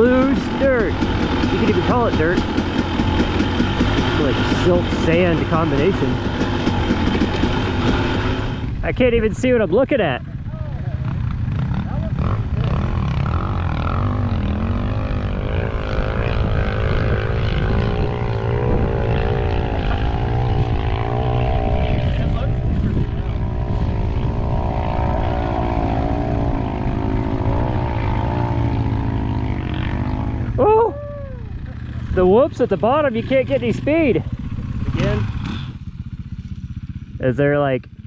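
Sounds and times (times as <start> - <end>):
dirt bike engine revving: 0.0 - 38.0
dirt bike idling: 0.0 - 38.0.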